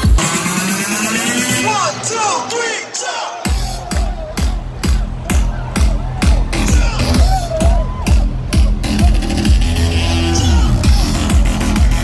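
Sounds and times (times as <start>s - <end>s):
crowd voices: 0.0s - 12.0s
electronic dance music: 0.0s - 12.0s
kick drum: 3.5s - 9.2s.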